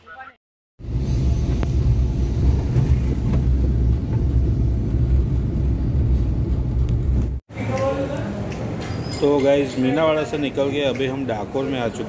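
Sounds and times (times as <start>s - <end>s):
vehicle engine and tyres rumbling: 0.8s - 12.0s.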